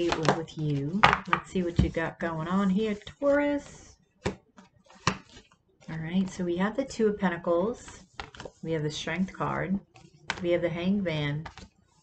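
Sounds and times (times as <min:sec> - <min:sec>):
cards rustling: 0:02.7 - 0:06.0, 0:07.9 - 0:08.6, 0:11.4 - 0:11.8
cards tapping on table: 0:04.2 - 0:05.5.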